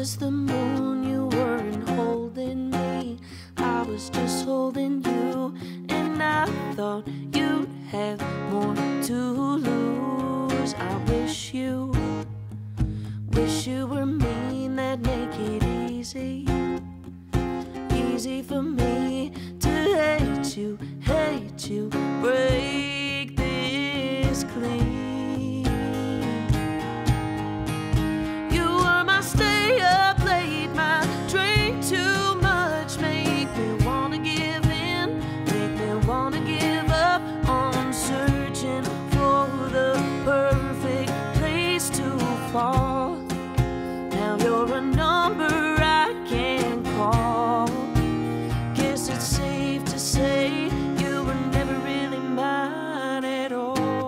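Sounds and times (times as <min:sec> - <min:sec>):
strummed acoustic guitar: 0:00.0 - 0:54.0
woman singing: 0:00.0 - 0:54.0
cajon beat: 0:22.4 - 0:51.8.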